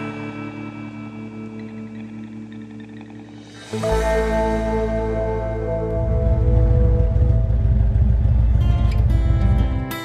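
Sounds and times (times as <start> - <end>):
background music: 0.0 - 10.0
motorcycle engine rumbling: 0.0 - 10.0.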